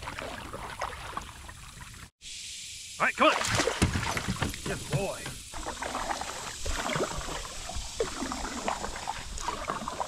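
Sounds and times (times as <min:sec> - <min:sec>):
dog splashing in water: 0:03.3 - 0:10.0.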